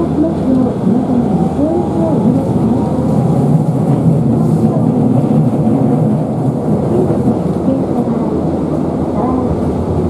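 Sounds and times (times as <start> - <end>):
streetcar motors and wheels rumbling: 0.0 - 10.0.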